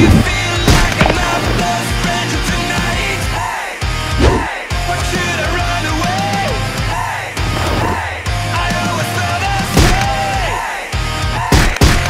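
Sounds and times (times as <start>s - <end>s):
loud rock music: 0.0s - 12.0s.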